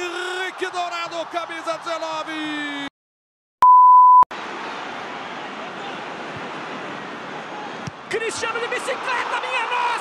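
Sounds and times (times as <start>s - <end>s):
stadium crowd noise: 0.0s - 2.9s, 4.3s - 10.0s
high test tone beep: 3.6s - 4.2s.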